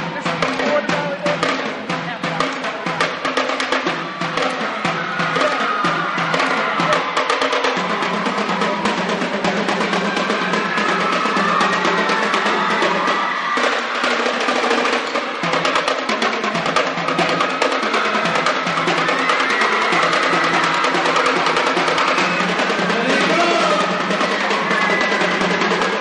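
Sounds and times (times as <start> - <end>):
marching snare drums: 0.0 - 26.0
marching tenor drums: 0.0 - 26.0.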